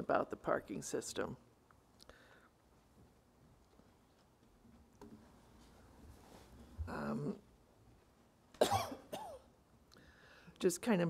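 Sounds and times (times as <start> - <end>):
person clearing throat: 8.6 - 9.5
person coughing: 8.6 - 9.5.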